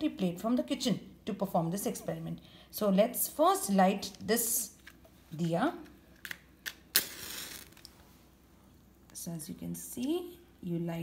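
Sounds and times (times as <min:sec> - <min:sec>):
match flaring hiss: 0:06.9 - 0:07.9
match scraping on matchbox: 0:06.9 - 0:07.9.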